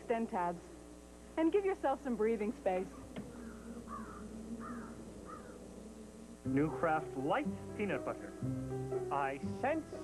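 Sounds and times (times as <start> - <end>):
faint steady hum: 0.0 - 10.0
bird calling: 2.8 - 7.4.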